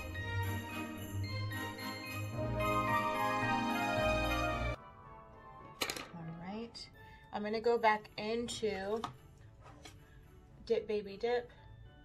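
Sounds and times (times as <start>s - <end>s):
faint christmas music: 0.0s - 12.0s.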